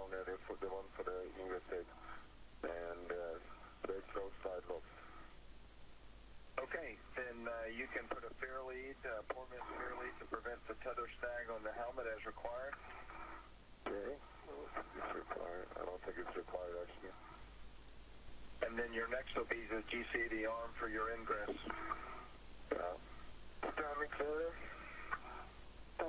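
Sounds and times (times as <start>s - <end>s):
men talking over radio: 0.0s - 5.2s, 6.6s - 13.2s, 13.8s - 17.4s, 18.6s - 25.4s
steady low hum: 0.0s - 26.0s.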